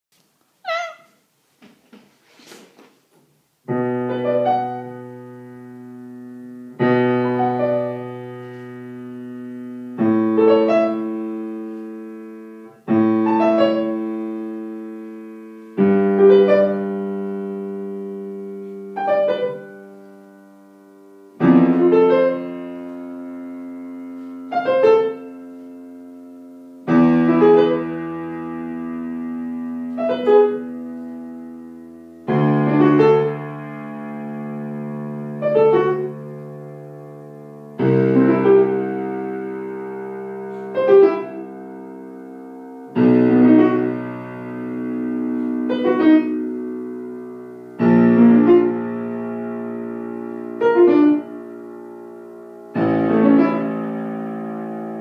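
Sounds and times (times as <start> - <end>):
slow piano piece: 0.6 - 1.4, 3.4 - 55.0.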